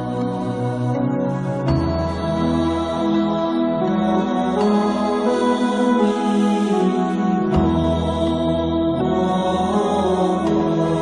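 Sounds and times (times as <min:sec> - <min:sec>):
slow music with held notes: 0:00.0 - 0:11.0.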